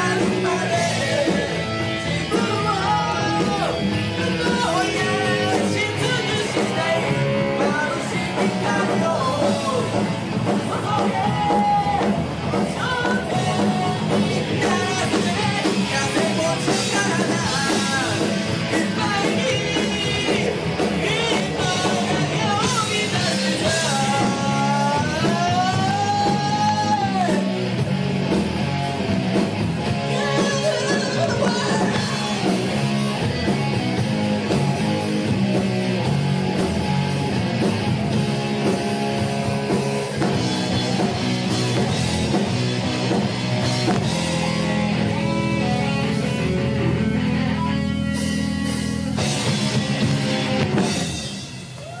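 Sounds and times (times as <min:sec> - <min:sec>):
live rock band playing: 0:00.0 - 0:52.0.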